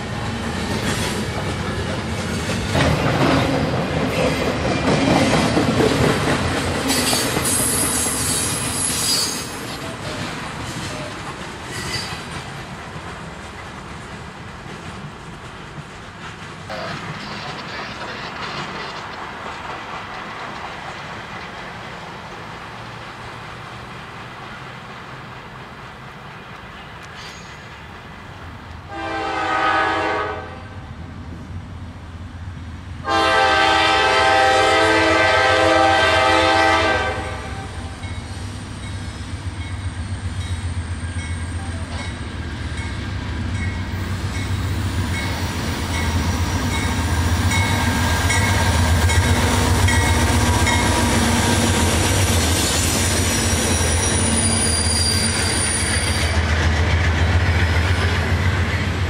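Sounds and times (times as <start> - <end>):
locomotive rumble: 0.0 - 30.2, 33.1 - 59.0
train wheels passing: 0.0 - 59.0
locomotive horn blasts: 28.9 - 30.7, 33.0 - 37.8
faint high squeal: 53.7 - 56.4.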